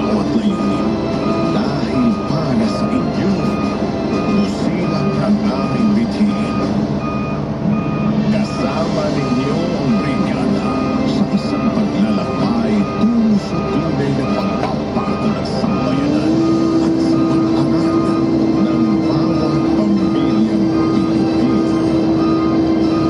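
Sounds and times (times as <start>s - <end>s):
music with a voice: 0.0s - 6.7s, 8.0s - 23.0s
diesel engine running: 0.0s - 23.0s
reversing alarm beeping: 0.0s - 23.0s.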